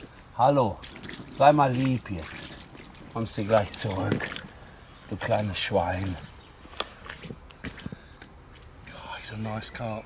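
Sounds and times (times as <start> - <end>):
fish tapping and rustling on mat: 6.6 - 8.7.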